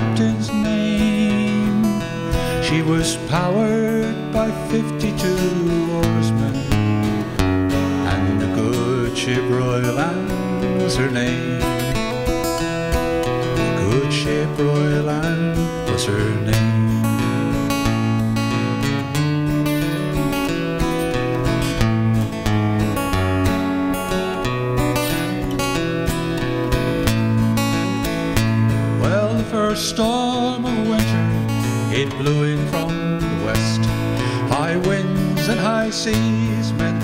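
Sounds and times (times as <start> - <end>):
acoustic guitar strumming: 0.0 - 37.0.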